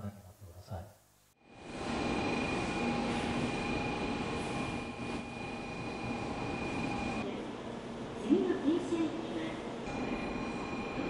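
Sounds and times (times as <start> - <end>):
steady noisy hum: 0.0 - 11.0
faint high whine: 1.3 - 8.3, 9.3 - 11.0.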